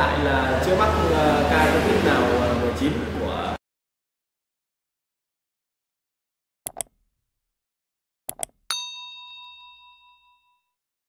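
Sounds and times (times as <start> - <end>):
quick clicks: 6.7 - 7.0, 8.3 - 8.6
notification bell ding: 8.7 - 10.7.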